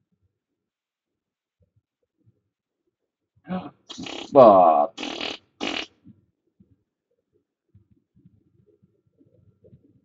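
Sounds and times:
person breathy bursts: 3.5 - 5.8
buzzy falling vocal noise: 3.7 - 5.9.

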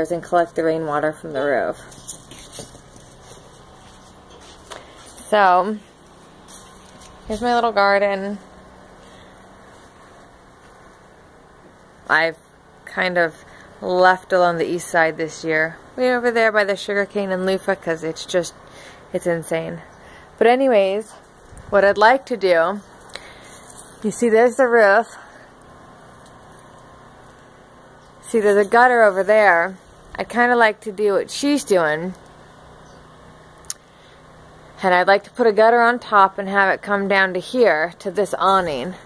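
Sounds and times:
low hum: 0.0 - 39.0
person speaking: 7.2 - 8.4.

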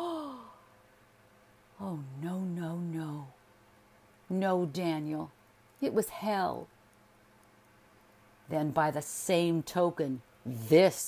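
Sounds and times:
woman sighing: 0.0 - 0.7.

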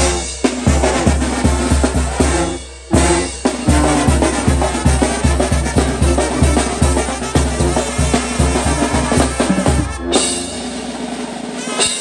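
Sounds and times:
steady bass line: 0.0 - 11.1
big accented drum and cymbal hits: 0.0 - 12.0
even drum beat: 0.0 - 12.0.

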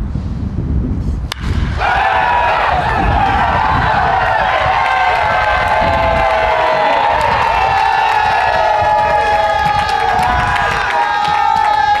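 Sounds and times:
group shouting and cheering: 1.4 - 12.0
people clapping: 3.5 - 12.0.

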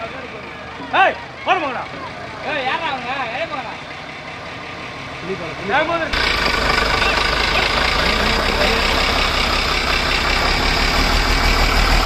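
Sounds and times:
diesel truck engine running: 0.0 - 12.0.

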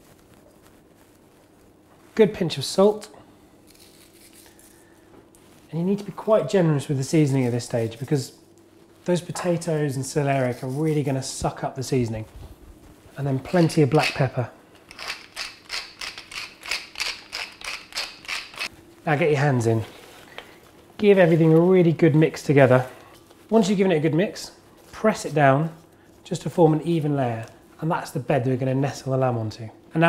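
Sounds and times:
pepper mill grinding: 13.5 - 14.3, 14.9 - 18.7.

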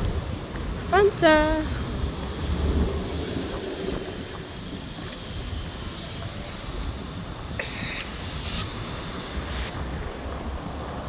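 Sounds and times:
road traffic rumble: 0.0 - 11.0
wind buffeting microphone: 0.0 - 11.0.

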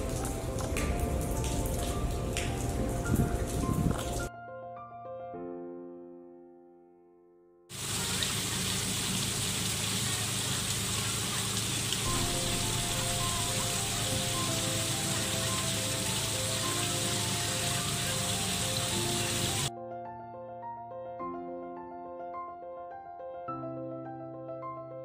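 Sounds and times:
waterfall splashing into pond: 0.0 - 4.2, 7.7 - 19.7
soft melodic music: 0.0 - 7.7, 12.1 - 25.0.

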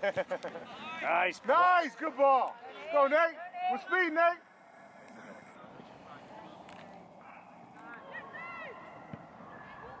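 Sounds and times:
distant voices calling out: 3.7 - 10.0.

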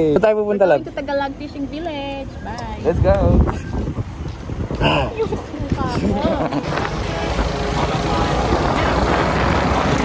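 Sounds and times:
wind noise on microphone: 2.3 - 10.0
person laughing: 6.0 - 6.8
motorcycle engine: 6.4 - 10.0.

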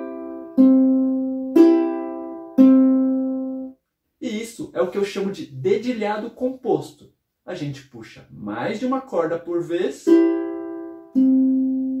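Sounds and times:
ukulele fingerpicked: 0.0 - 3.7, 10.1 - 12.0.

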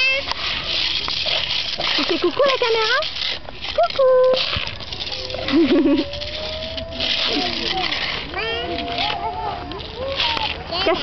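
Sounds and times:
small children playing: 0.0 - 11.0
toddler squealing: 5.0 - 11.0.

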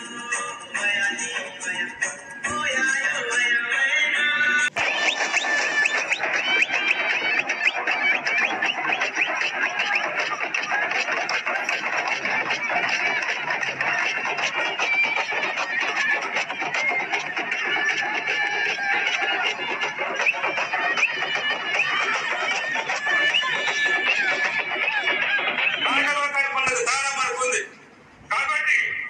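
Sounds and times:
song playing: 0.0 - 27.2
hand drums playing quickly: 4.7 - 26.2
crowd voices: 4.7 - 27.0.

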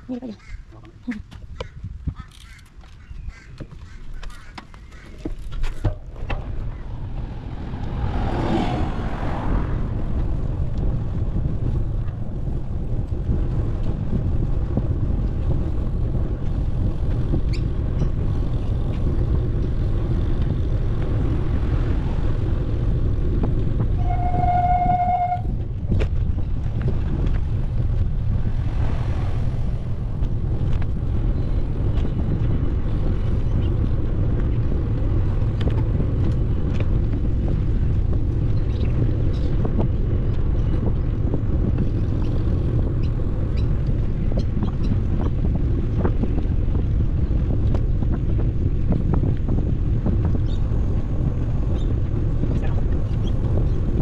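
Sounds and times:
wind rumble on microphone: 0.0 - 54.0
vehicle passing: 6.0 - 13.6, 18.3 - 38.4
vehicle horn toot: 23.9 - 25.6.

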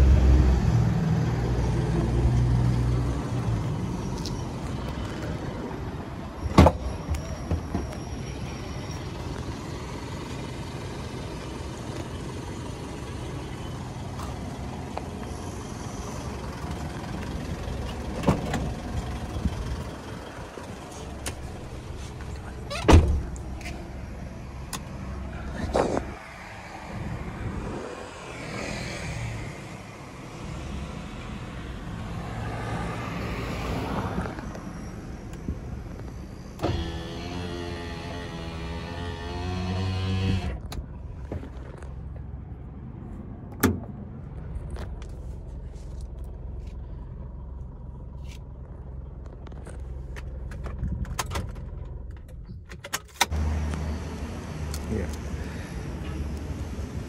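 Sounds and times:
diesel engine idling: 7.2 - 25.7, 44.2 - 50.6, 53.3 - 57.0.

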